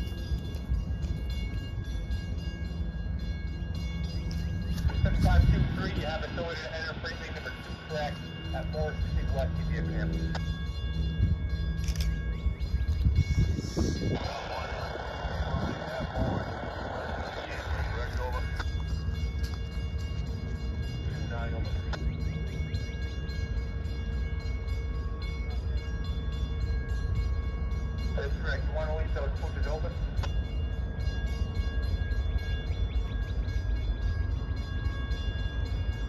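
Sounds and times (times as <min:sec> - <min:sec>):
low engine rumble: 0:00.0 - 0:36.0
loud rush of noise: 0:13.4 - 0:18.6.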